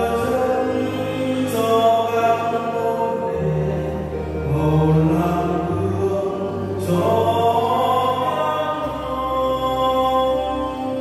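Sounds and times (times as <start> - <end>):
chant-like hymn singing: 0.0 - 11.0
held low accompanying notes: 0.0 - 11.0.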